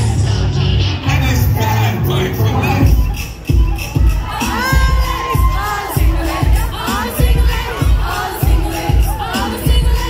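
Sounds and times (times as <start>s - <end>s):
crowd shouting and cheering: 0.0s - 10.0s
loud music with heavy bass beat: 0.0s - 10.0s.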